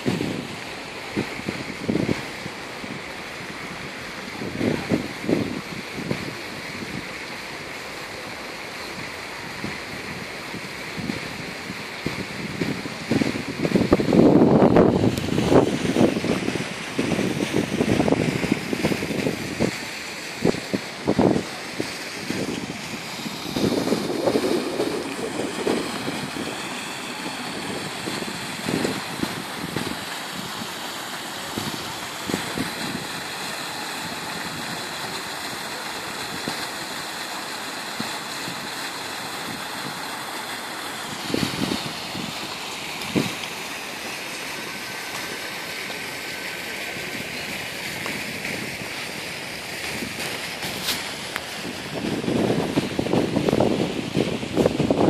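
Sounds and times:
wind gusts on microphone: 0.0s - 36.6s, 37.8s - 40.3s, 41.0s - 55.0s.

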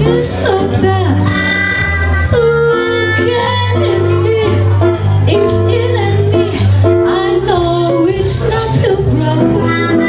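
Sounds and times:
guitar and bass accompaniment: 0.0s - 10.0s
woman singing jazz: 0.0s - 10.0s.

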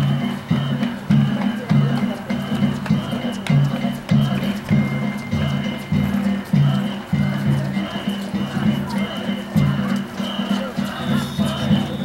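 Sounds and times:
repeating percussion beat: 0.0s - 12.0s
steady high ringing: 0.0s - 12.0s
voices over percussion: 0.0s - 12.0s.

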